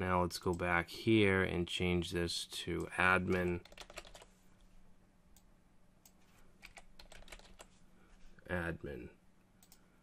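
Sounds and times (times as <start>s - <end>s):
faint keyboard typing: 2.8s - 4.7s, 5.3s - 7.8s, 9.6s - 10.0s.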